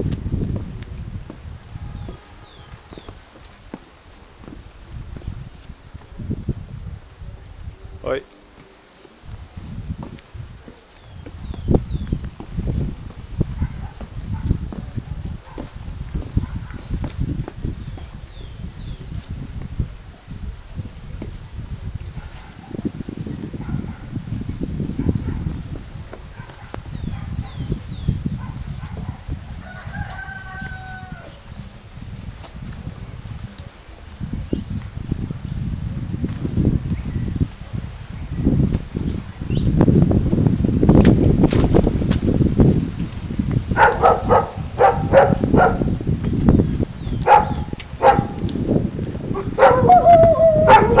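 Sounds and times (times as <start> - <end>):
low microphone rumble: 0.0 - 3.7, 4.3 - 8.2, 9.1 - 51.0
dog barking: 13.6 - 14.6, 15.4 - 15.7, 23.6 - 24.1, 25.0 - 25.5, 26.4 - 27.6, 43.8 - 45.9, 47.2 - 48.4, 49.4 - 51.0
rooster crowing: 29.6 - 31.4
dog drawn-out cry: 49.4 - 51.0.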